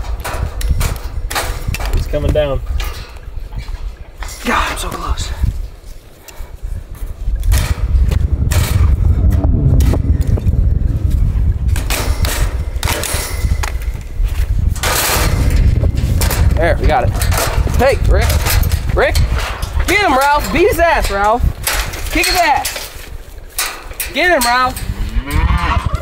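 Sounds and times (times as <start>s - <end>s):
rustling and scraping: 0.0s - 26.0s
loud low rumble: 7.6s - 12.0s.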